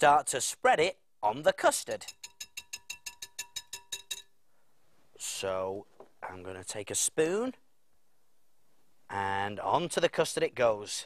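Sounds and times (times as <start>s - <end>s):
whisk wires clinking against glass: 2.0s - 4.4s.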